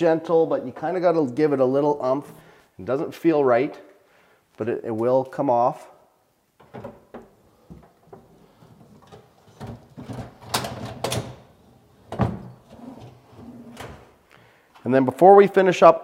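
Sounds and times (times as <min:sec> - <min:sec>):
drawer clicks and rattles: 0:06.6 - 0:14.1
drawer sliding on rails: 0:08.1 - 0:14.2.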